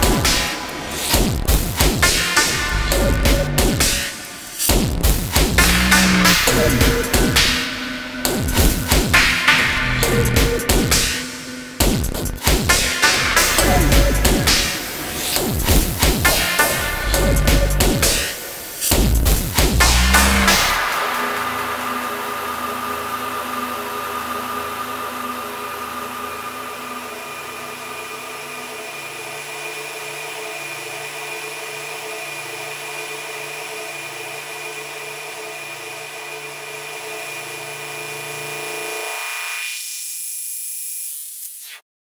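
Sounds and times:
deep bass notes: 2.6s - 3.8s, 4.7s - 7.4s, 9.8s - 10.9s, 13.5s - 14.5s, 17.0s - 18.0s, 18.9s - 20.8s
buzzing electronic drone: 4.7s - 16.0s, 18.9s - 41.2s.

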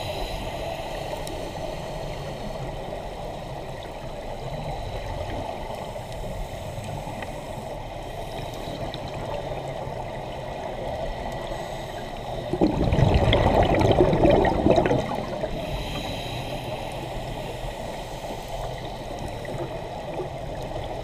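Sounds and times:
faint ticks: 0.0s - 10.1s, 10.7s - 12.5s, 16.0s - 21.0s
underwater rushing of water: 0.0s - 21.0s.

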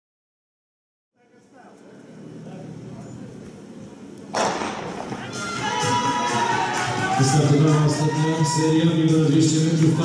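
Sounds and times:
starting pistol crack: 4.4s - 5.2s
stadium murmur: 4.4s - 10.0s.

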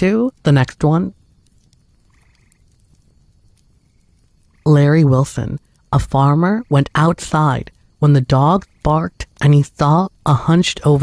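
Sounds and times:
faint trilling animal call: 2.0s - 2.8s.

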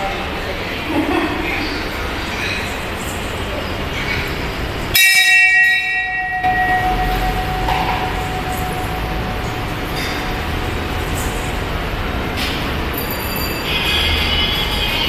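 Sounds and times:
metal temple bell ringing: 4.9s - 15.0s.

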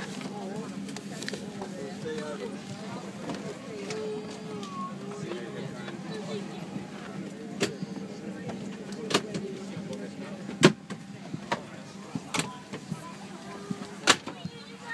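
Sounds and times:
murmur of passengers' voices: 0.0s - 14.9s.

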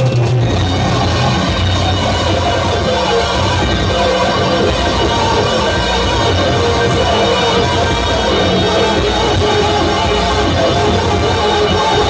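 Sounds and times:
noisy experimental electronic music: 0.0s - 12.0s.

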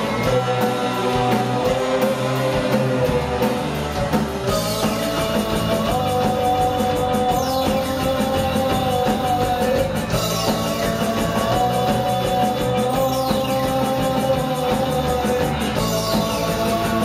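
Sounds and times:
regular drum beat: 0.0s - 17.0s
rock band playing live: 0.0s - 17.0s.

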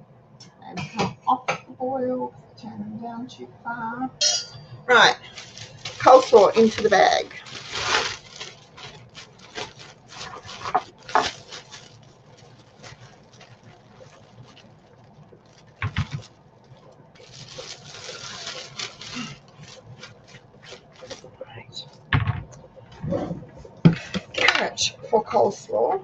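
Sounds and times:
vegetables rustling in plastic bag: 4.9s - 22.0s.

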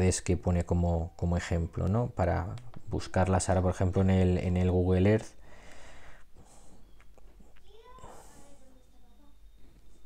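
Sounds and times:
faint child calling: 7.6s - 9.7s.

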